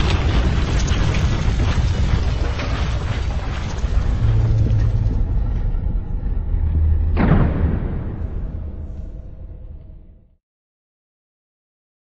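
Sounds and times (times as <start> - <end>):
deep rumble: 0.0 - 10.4
cinematic boom: 3.4 - 10.2.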